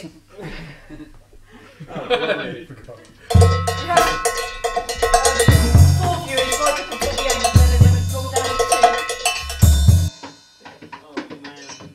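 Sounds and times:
band music: 3.3s - 10.1s
drums and percussion clicking rhythm: 3.3s - 11.9s.

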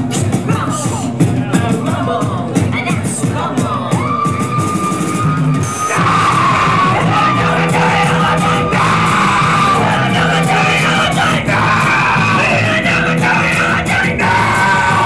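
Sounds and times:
shouted vocals: 1.7s - 15.0s
live rock band playing: 4.4s - 15.0s.

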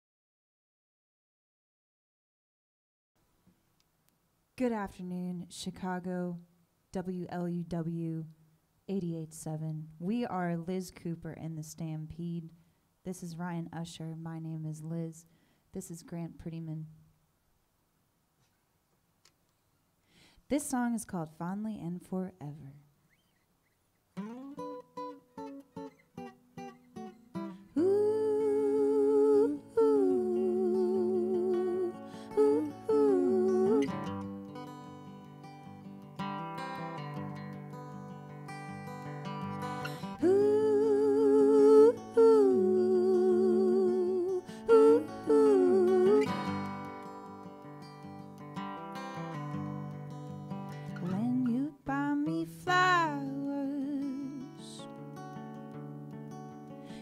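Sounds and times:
acoustic guitar picking: 24.2s - 57.0s
voices singing wordless harmony: 27.8s - 34.0s, 40.1s - 46.6s.

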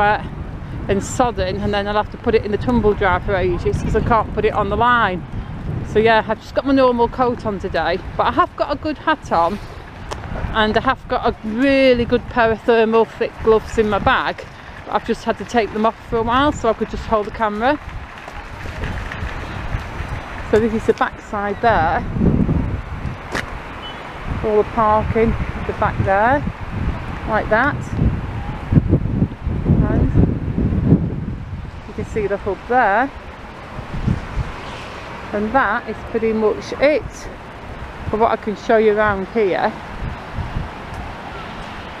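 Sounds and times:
steady outdoor hiss: 0.0s - 42.0s
traffic on wet road: 0.0s - 42.0s
wind rumbling on microphone: 0.0s - 42.0s.

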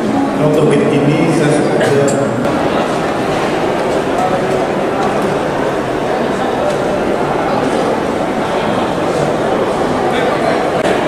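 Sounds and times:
airport hall ambience: 0.0s - 11.0s
indistinct voices: 0.0s - 11.0s.

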